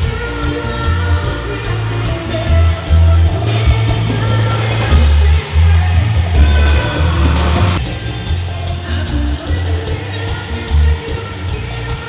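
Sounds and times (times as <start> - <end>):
live band music through sound system: 0.0 - 12.0
pulsing bass and drums: 0.0 - 12.0.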